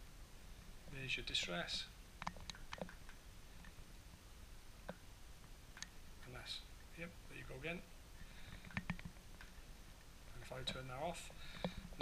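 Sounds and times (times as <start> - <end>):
faint plastic clicks and taps: 2.2 - 3.8, 8.2 - 12.0.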